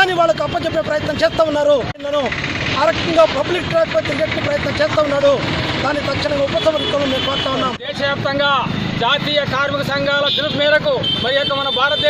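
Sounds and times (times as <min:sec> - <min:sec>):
man speaking: 0:00.0 - 0:12.0
traffic noise: 0:00.0 - 0:12.0.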